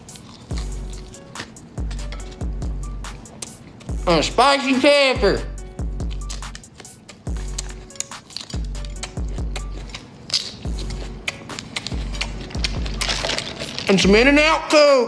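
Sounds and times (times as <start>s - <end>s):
chewing and lip-smacking: 0.0s - 4.0s, 6.0s - 13.9s
music with deep bass line: 1.8s - 3.2s.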